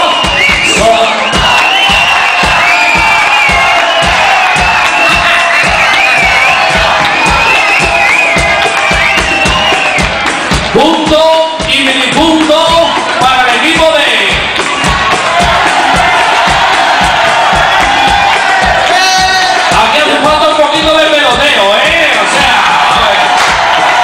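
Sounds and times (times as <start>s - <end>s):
large crowd cheering: 0.0s - 24.0s
live dance music over pa: 0.0s - 24.0s
steady drum beat: 0.0s - 24.0s.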